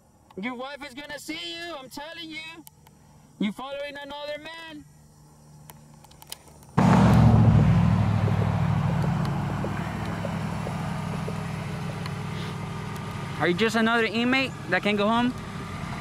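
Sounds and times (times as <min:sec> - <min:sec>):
car pulling up and stopping: 0:06.8 - 0:16.0.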